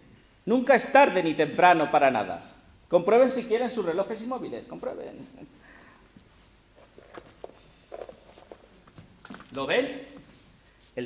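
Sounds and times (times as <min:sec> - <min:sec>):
footsteps on stage floor: 0:06.1 - 0:11.0.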